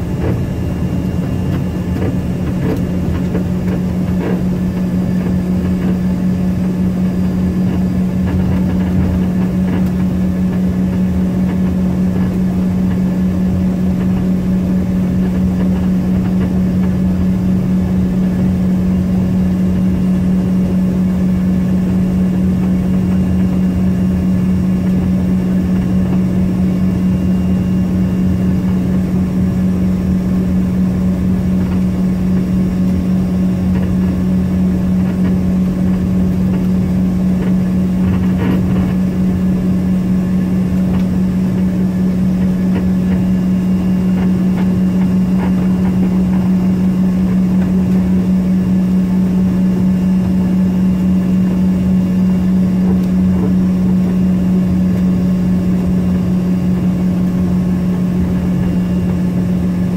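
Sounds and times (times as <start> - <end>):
jet engines droning: 0.0 - 59.9
steady low hum: 0.0 - 59.9.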